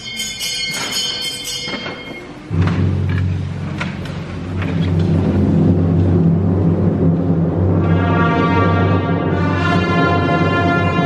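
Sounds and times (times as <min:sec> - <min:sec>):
high ringing tones: 0:00.0 - 0:02.6
timpani roll: 0:02.5 - 0:11.0.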